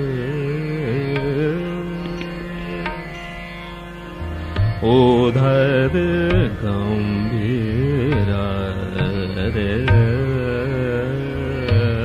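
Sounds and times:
man singing classical vocal: 0.0s - 3.4s, 4.7s - 12.0s
tanpura drone: 0.0s - 12.0s.

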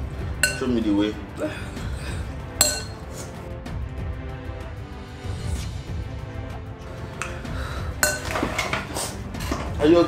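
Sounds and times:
background music: 0.0s - 10.0s
fork clinking against glass bowl: 0.4s - 0.8s, 2.6s - 3.1s, 8.0s - 8.8s.

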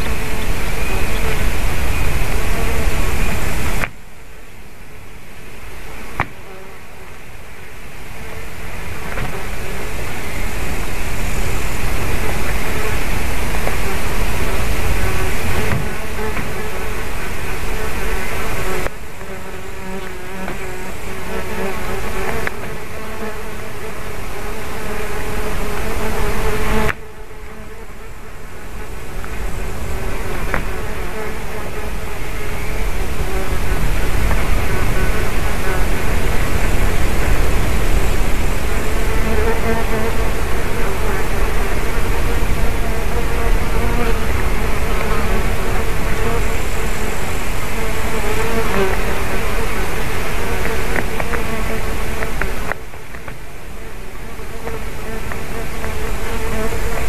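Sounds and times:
insects buzzing: 0.0s - 57.0s.

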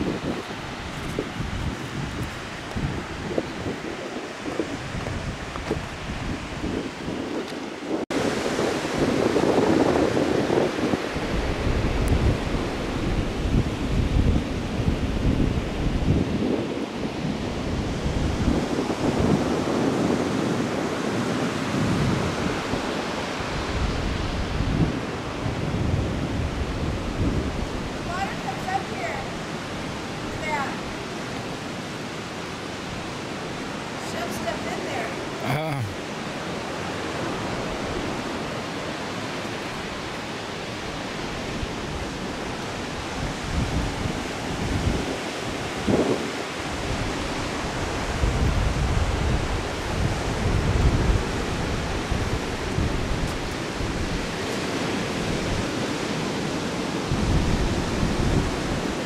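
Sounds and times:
ocean surf washing on shore: 0.0s - 59.0s
wind buffeting microphone: 0.0s - 59.0s.

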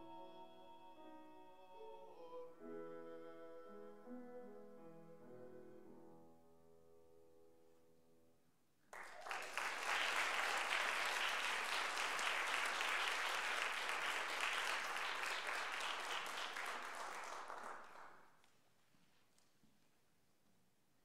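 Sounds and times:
audience applauding: 8.9s - 18.3s.

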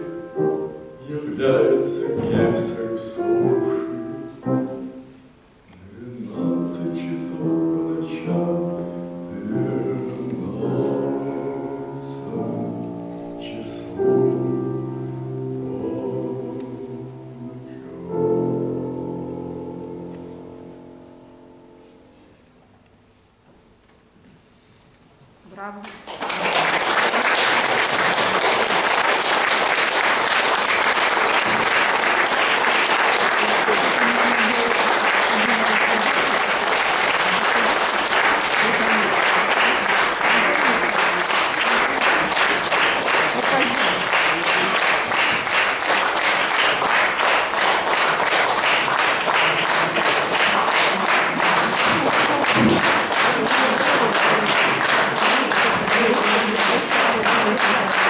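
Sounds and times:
audience applauding: 25.9s - 58.0s.

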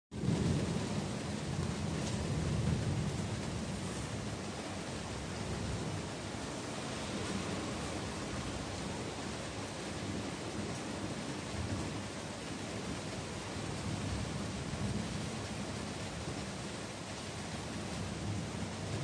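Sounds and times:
thunder rumble: 0.2s - 6.1s
rain hiss: 0.2s - 19.0s.

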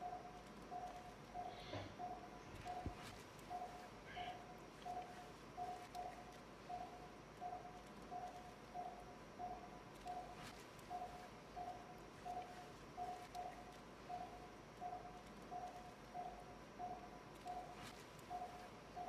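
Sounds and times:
patient monitor pulse beeps: 0.0s - 19.0s.

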